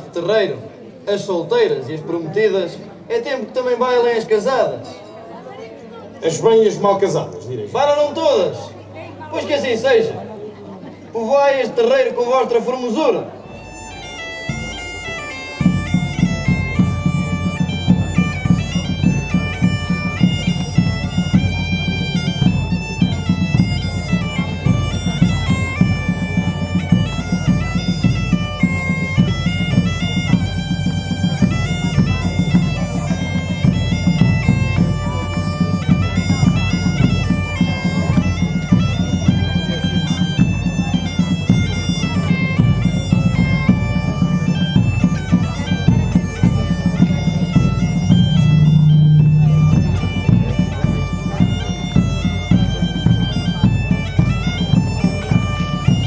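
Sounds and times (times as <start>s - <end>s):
bagpipe dance tune: 13.4s - 56.0s
drum beating: 13.6s - 56.0s.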